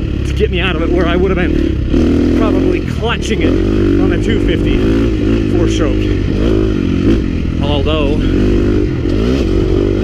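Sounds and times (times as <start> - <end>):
motorcycle engine under load: 0.0 - 10.0.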